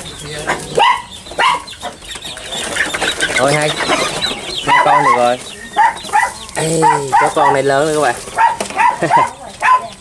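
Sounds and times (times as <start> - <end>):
puppies yipping: 0.0 - 10.0.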